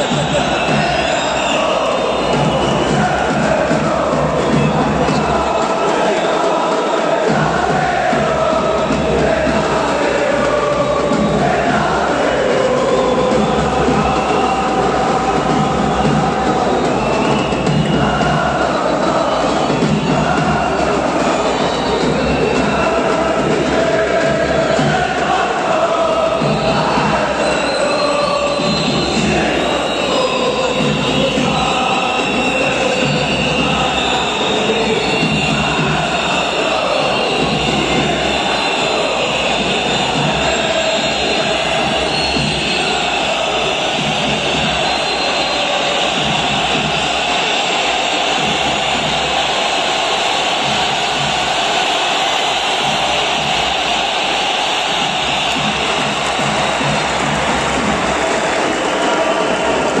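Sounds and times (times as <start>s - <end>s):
stadium crowd singing a chant: 0.0s - 60.0s.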